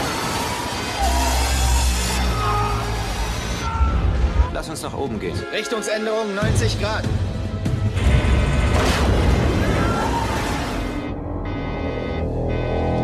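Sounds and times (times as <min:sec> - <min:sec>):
tense film score: 0:00.0 - 0:13.0
loud rumbling crash: 0:07.8 - 0:11.1.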